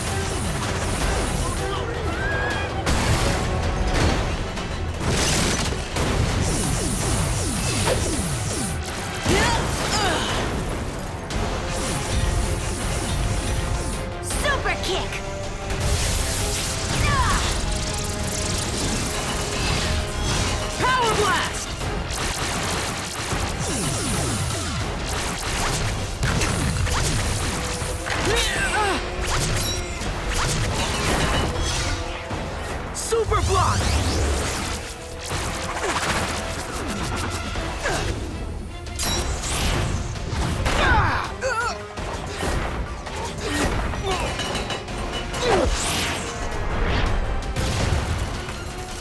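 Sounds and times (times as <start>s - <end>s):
cartoon background music: 0.0s - 49.0s.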